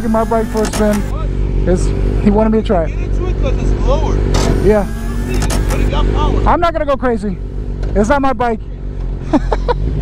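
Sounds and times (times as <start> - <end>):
motorcycle engine idling: 0.0 - 9.2
men's voices: 0.0 - 9.3.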